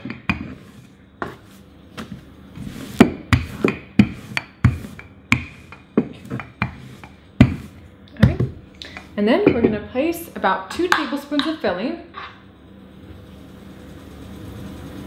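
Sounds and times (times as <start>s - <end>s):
rolling pin rolling dough: 0.0s - 10.0s
wooden rolling pin knocks: 3.0s - 8.6s.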